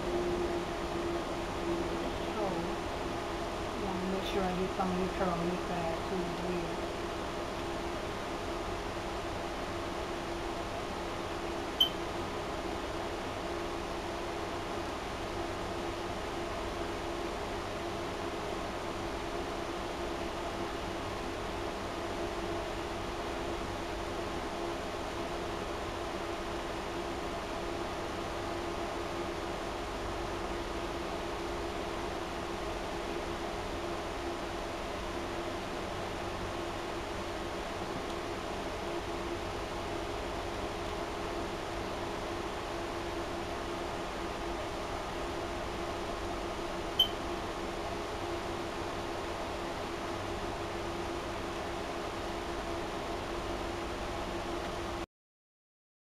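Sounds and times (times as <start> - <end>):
fan humming: 0.0 - 54.9.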